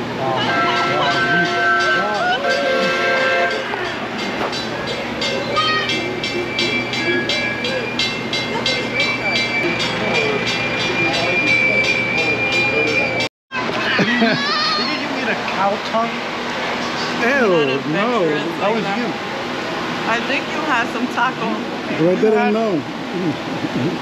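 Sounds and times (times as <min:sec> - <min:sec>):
long steady tone: 0:00.0 - 0:13.3, 0:16.0 - 0:24.0
small train clattering on track: 0:00.6 - 0:13.8.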